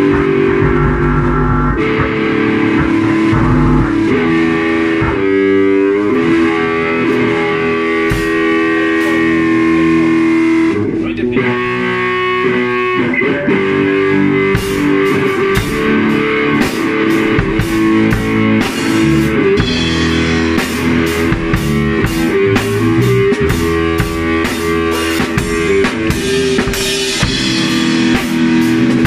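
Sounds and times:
drums with cymbal hits: 0:00.0 - 0:10.7, 0:13.6 - 0:29.0
bass: 0:00.0 - 0:29.0
electric guitar long held notes: 0:00.0 - 0:29.0.

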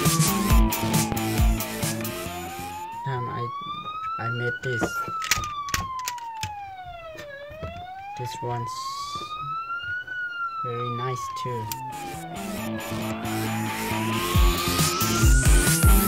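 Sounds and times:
toy police siren wail: 0:00.0 - 0:16.0
toy handling clicks and knocks: 0:04.7 - 0:06.5.

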